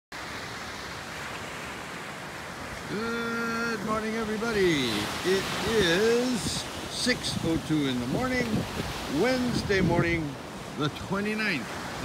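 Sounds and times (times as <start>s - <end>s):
ocean surf breaking: 0.1s - 12.0s.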